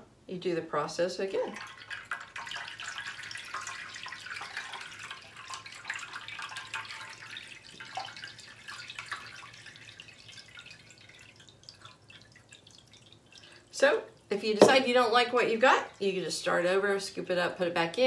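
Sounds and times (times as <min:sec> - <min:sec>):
water dripping and splashing: 0:01.4 - 0:16.8.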